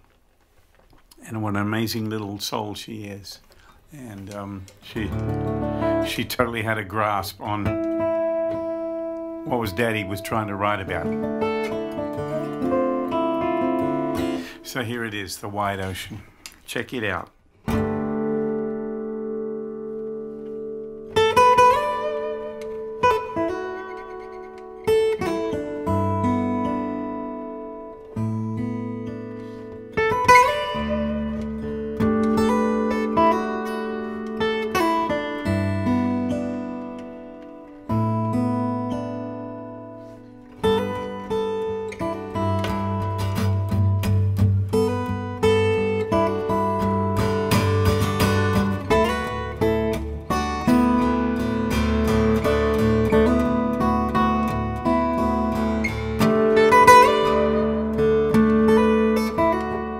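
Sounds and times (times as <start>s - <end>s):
fingerstyle acoustic guitar: 3.4s - 59.9s.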